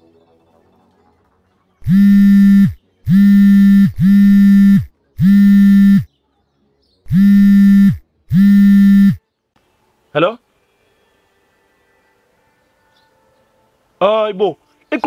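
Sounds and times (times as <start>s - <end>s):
mobile phone vibrating: 1.8s - 6.1s, 7.1s - 9.2s.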